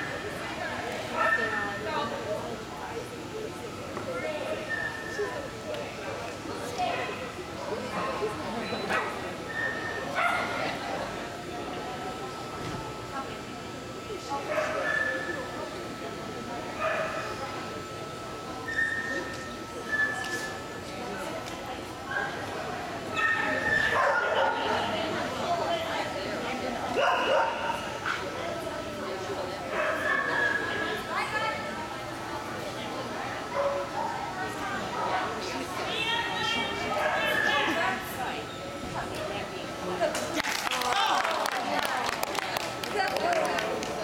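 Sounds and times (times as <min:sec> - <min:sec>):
murmur of voices: 0:00.0 - 0:44.0
dog barking: 0:23.2 - 0:24.7, 0:27.0 - 0:27.8, 0:29.8 - 0:30.6.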